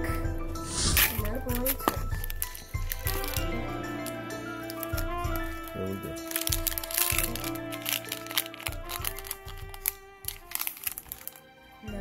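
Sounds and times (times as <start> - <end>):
background music: 0.0 - 12.0
foil wrapper crinkling: 0.7 - 11.5.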